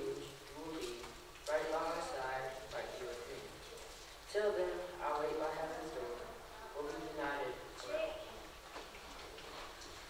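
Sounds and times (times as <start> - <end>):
person reading aloud: 0.0 - 3.6, 4.3 - 8.4.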